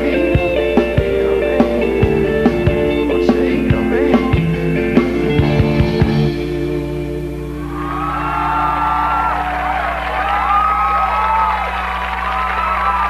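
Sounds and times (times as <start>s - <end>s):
rock band final chord: 0.0s - 13.0s
audience cheering and whooping: 7.5s - 13.0s.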